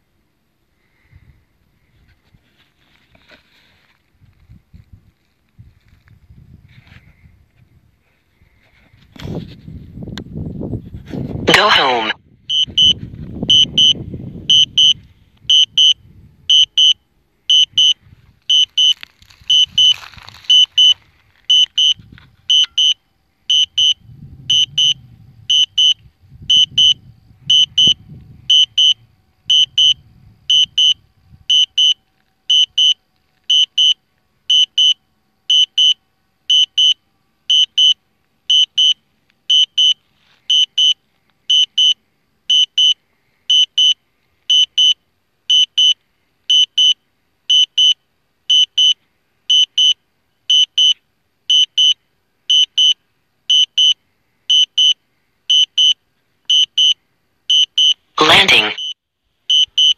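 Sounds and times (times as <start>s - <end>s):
remote controller warning beeps: 11.5s - 18.9s, 19.5s - 59.9s.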